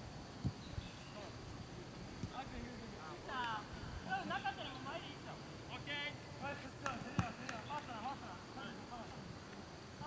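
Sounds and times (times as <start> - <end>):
faint sharp clicks: 6.8 - 7.9.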